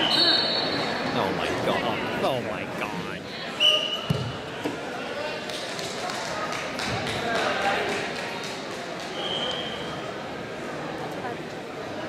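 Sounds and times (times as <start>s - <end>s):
voices talking and calling out: 0.0s - 3.9s.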